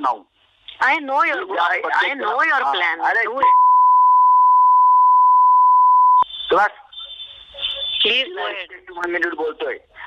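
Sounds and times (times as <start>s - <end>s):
people in conversation: 0.0s - 10.0s
censor bleep tone: 3.4s - 6.3s.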